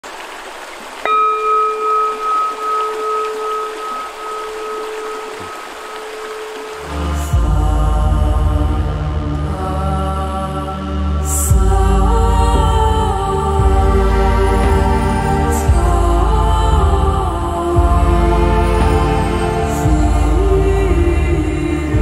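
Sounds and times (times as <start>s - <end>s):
running water hiss: 0.0s - 9.6s, 11.3s - 22.0s
singing bowl ringing: 1.0s - 7.2s
meditative music with deep drone: 1.0s - 22.0s.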